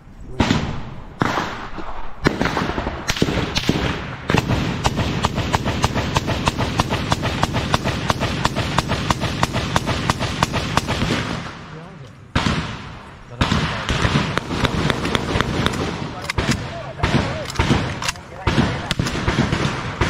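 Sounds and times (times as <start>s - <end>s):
single gunshots: 0.3s - 11.8s, 12.4s - 20.0s
rapid automatic gunfire: 2.2s - 11.4s, 13.4s - 20.0s.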